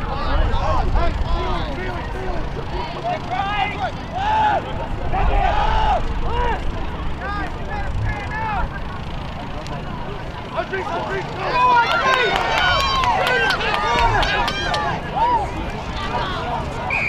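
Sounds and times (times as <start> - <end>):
spectators shouting and yelling: 0.0 - 17.0
steady low rumble: 0.0 - 17.0.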